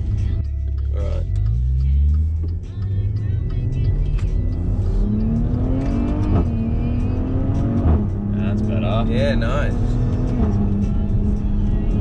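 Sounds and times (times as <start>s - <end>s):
car engine accelerating hard: 0.9s - 12.0s.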